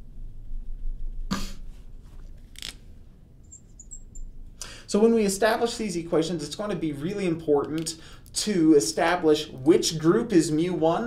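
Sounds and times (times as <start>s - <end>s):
person coughing: 1.3s - 1.6s.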